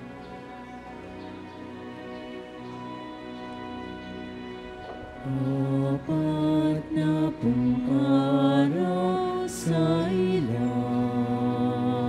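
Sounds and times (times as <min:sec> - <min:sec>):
hymn sung slowly: 0:00.0 - 0:12.0.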